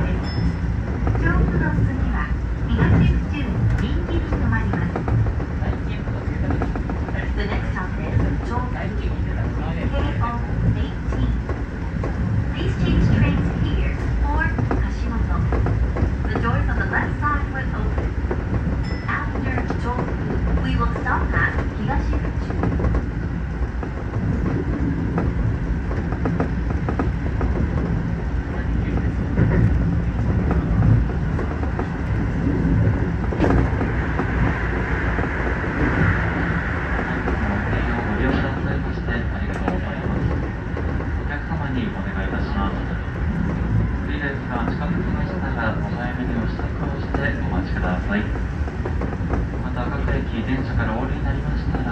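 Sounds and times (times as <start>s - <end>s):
train wheels rumbling: 0.0s - 51.9s.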